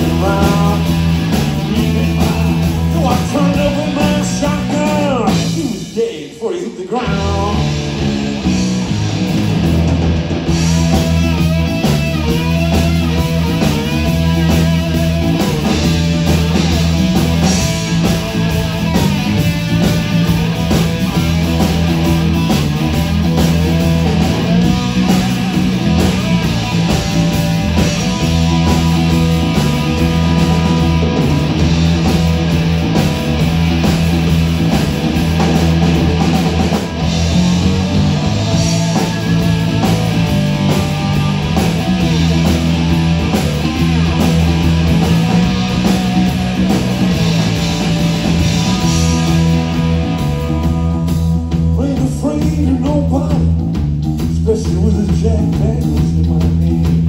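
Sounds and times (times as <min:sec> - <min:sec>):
bending lead guitar: 0:00.0 - 0:57.0
live blues rock band: 0:00.0 - 0:57.0.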